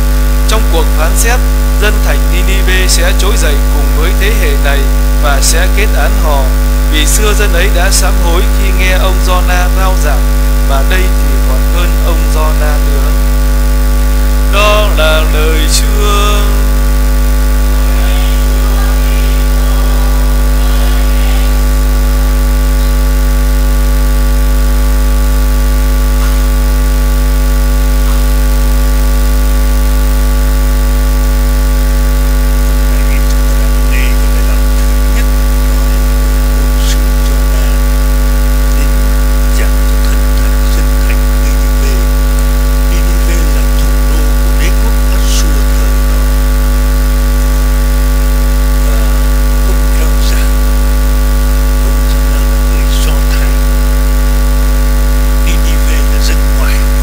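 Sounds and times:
loud electrical hum: 0.0s - 57.0s.

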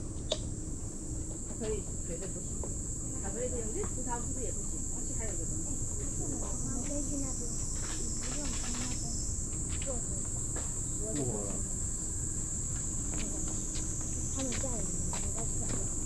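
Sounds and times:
insects buzzing: 0.0s - 16.0s
distant voices: 1.4s - 16.0s.

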